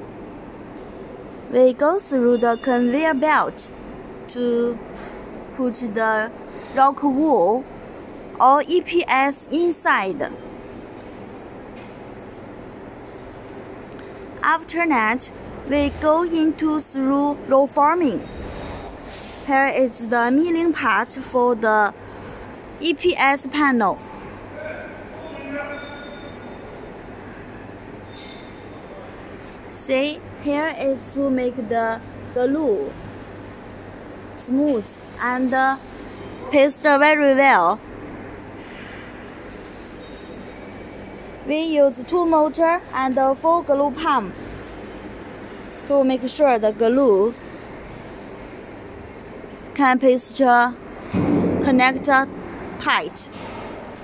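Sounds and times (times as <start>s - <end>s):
steady machinery noise: 0.0s - 54.0s.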